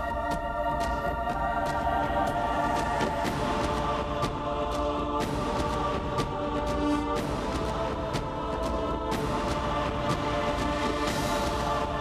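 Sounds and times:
dramatic theme music: 0.0s - 12.0s.

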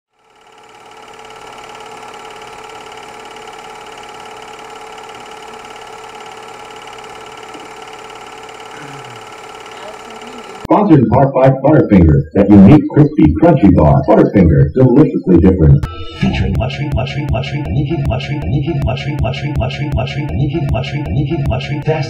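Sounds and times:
film projector whirring: 0.1s - 10.7s.

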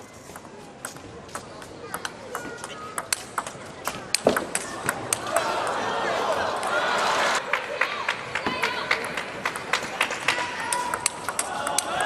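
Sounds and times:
table tennis ball clicks: 0.3s - 5.5s, 9.0s - 12.0s
crowd cheering and clapping: 5.1s - 12.0s.

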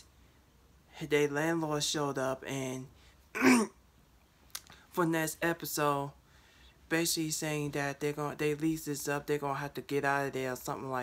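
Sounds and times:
man clearing his throat: 3.4s - 3.8s.

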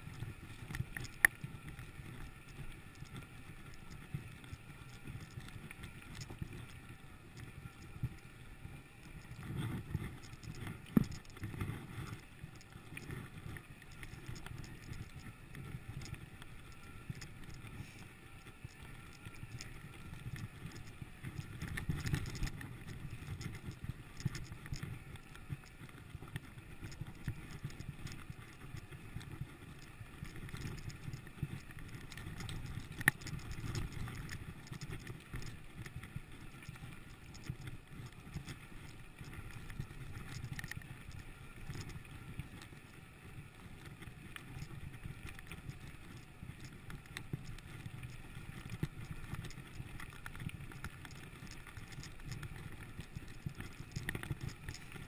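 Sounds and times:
bike tyres rumbling on stones: 0.0s - 55.0s.

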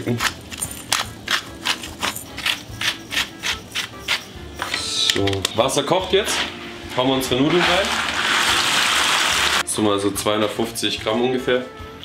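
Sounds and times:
spice mill grinding: 0.0s - 4.4s, 7.6s - 9.6s.

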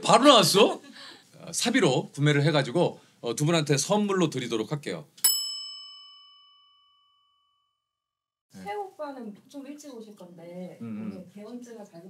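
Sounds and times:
bell-like ding: 5.2s - 7.9s.

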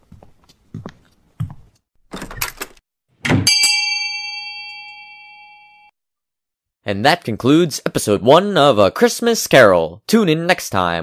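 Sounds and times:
bell strike ringing: 3.4s - 5.9s.

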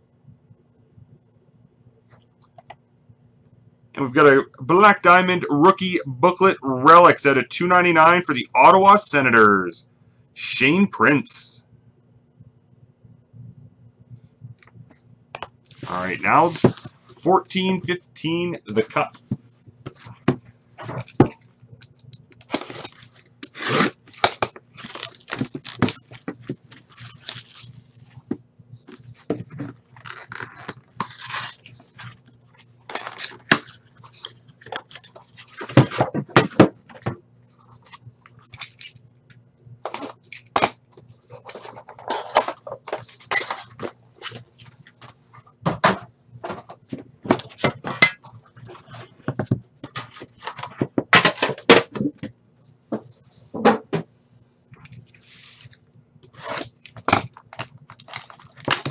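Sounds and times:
steady low hum: 0.0s - 58.9s
shrink wrap crinkling and tearing: 21.8s - 28.1s, 29.8s - 35.8s, 37.6s - 39.0s, 54.8s - 58.9s.

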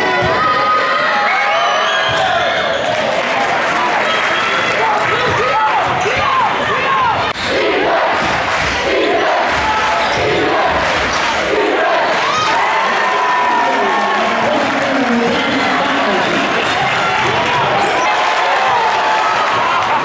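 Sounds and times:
crowd shouting and cheering: 0.0s - 20.0s.

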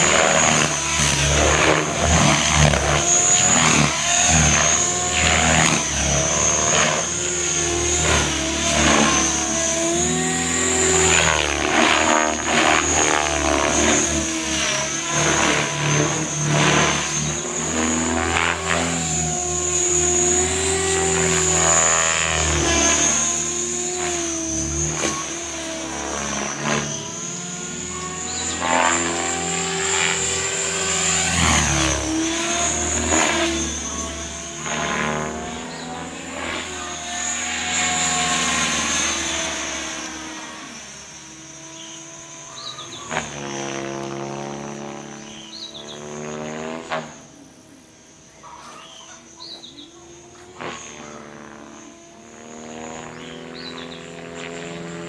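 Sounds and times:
rc helicopter motor whine: 0.0s - 55.0s.

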